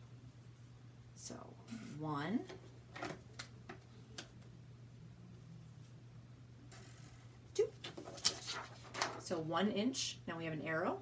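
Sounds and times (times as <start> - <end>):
paper rustling: 7.7 - 9.3.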